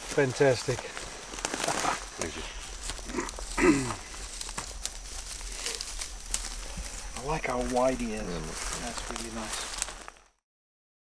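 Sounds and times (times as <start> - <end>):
rustling: 0.0 - 10.4
murmured voices: 0.2 - 9.8.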